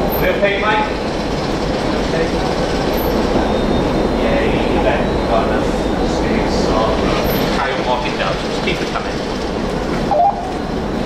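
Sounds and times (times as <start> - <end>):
diesel locomotive rumbling: 0.0 - 11.0
locomotive rolling on rails: 0.0 - 11.0.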